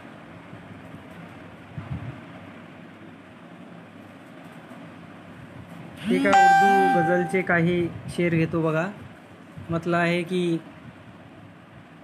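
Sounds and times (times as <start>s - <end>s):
ceiling fan whirring: 0.0s - 12.0s
brief low sound: 6.3s - 7.5s.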